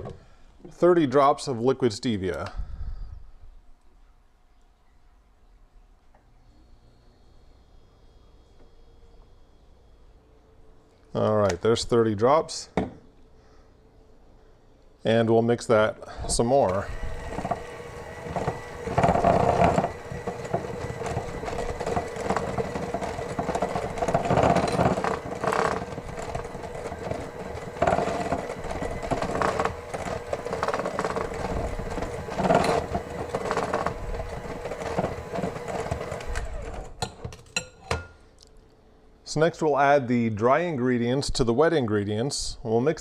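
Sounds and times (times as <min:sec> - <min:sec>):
electric hand mixer running: 0:16.7 - 0:37.1.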